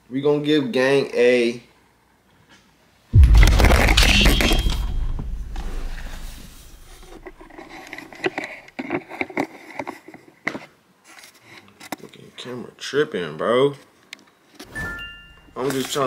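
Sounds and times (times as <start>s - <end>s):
camera handling rumbling scrape: 3.2s - 8.6s.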